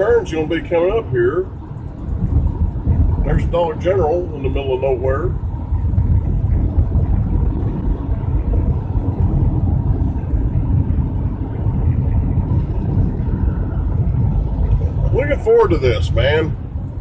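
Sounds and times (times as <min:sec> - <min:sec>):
car interior road rumble: 0:00.0 - 0:17.0.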